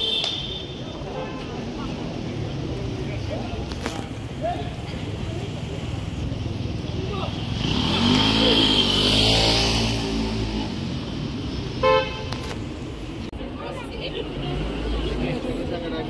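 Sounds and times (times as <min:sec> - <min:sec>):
vehicle passing by: 0:07.0 - 0:11.4
car horn toot: 0:11.8 - 0:12.4.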